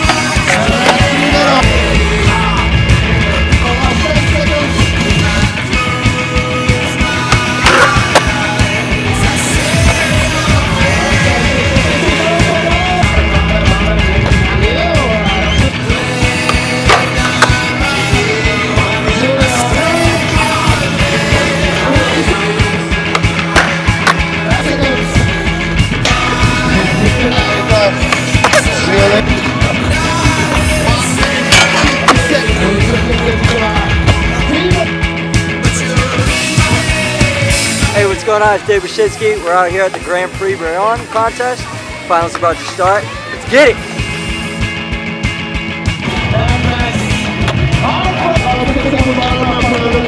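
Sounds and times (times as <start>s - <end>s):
skateboard clack: 0.0s - 1.6s, 7.3s - 8.5s, 16.4s - 17.8s, 23.0s - 24.3s, 27.4s - 28.9s, 30.4s - 32.5s
skateboard wheels rolling on concrete: 0.0s - 6.2s, 26.0s - 34.9s
rock music: 0.0s - 50.0s
skateboard clacks: 7.3s - 8.4s, 16.4s - 17.6s, 23.1s - 24.3s, 28.0s - 28.8s.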